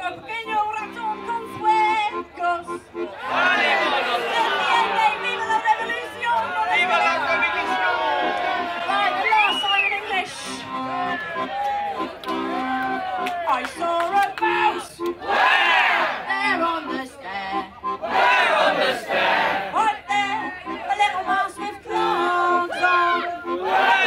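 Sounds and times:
accordion playing chords: 0:00.0 - 0:24.0
audience voices: 0:02.8 - 0:20.9.

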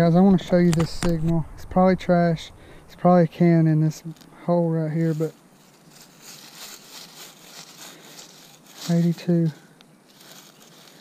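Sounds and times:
dry leaves rustling: 0:00.0 - 0:11.0.

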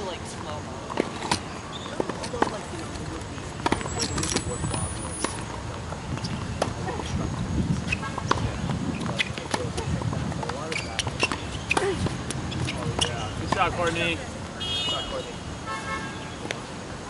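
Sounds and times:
tennis balls bouncing on hard court: 0:00.9 - 0:02.7, 0:03.6 - 0:14.0
tennis balls struck by rackets: 0:00.9 - 0:03.0, 0:03.6 - 0:07.2, 0:07.8 - 0:14.1.

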